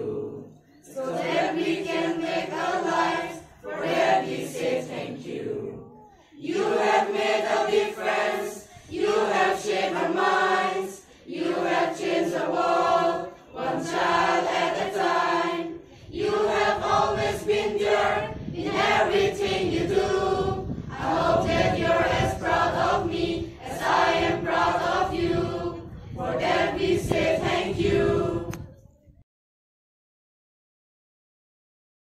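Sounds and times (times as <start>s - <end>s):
children's choir singing: 0.0s - 28.7s.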